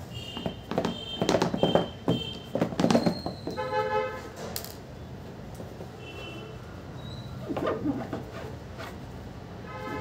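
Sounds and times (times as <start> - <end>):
cardboard box knocks and rubs: 0.2 - 3.6.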